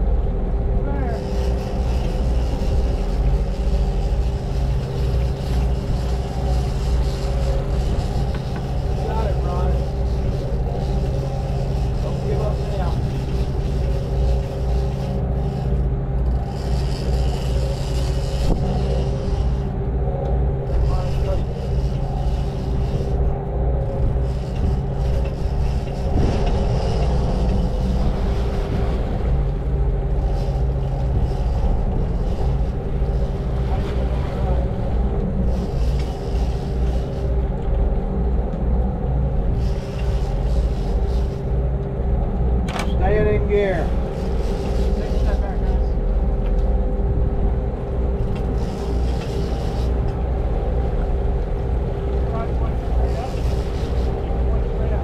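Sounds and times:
boat engines humming: 0.0s - 55.0s
water churning along hull: 0.0s - 55.0s.

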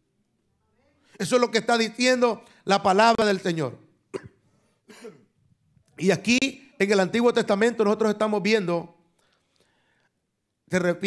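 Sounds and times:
person clearing throat: 4.1s - 5.4s
person coughing: 4.1s - 5.4s.

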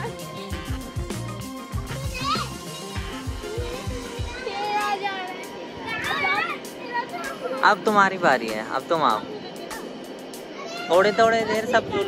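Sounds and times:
background music with a beat: 0.0s - 10.5s
children shouting: 1.7s - 7.8s, 9.6s - 12.0s.

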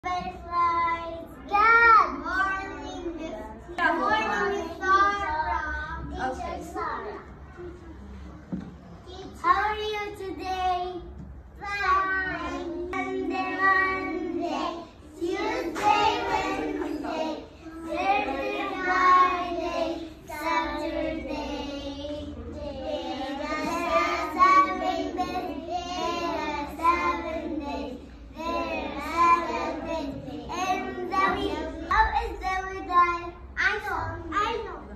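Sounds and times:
young children singing: 0.0s - 7.4s, 9.3s - 34.2s.

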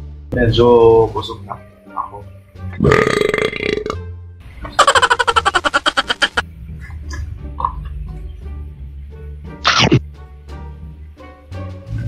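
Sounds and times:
man burping: 2.8s - 4.0s.

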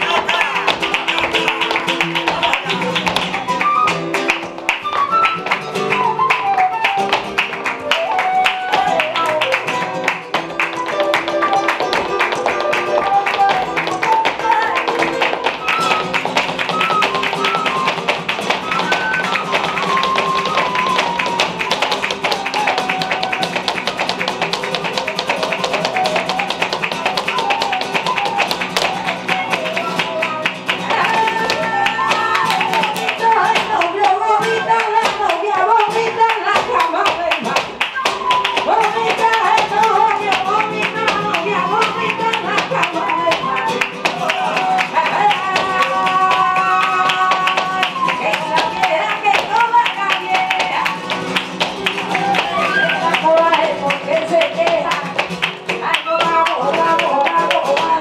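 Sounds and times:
flamenco guitar playing: 0.0s - 58.0s
hand clapping: 0.0s - 58.0s
shoes stamping on wooden stage: 0.0s - 58.0s.

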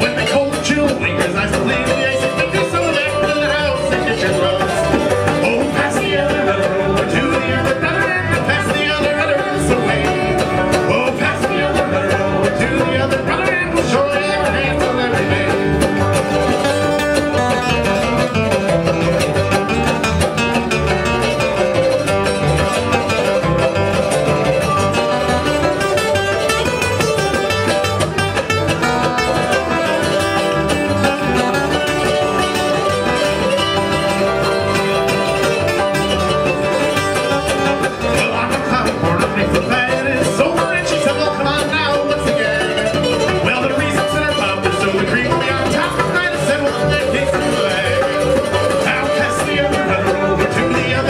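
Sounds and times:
bluegrass string band playing: 0.0s - 51.0s.

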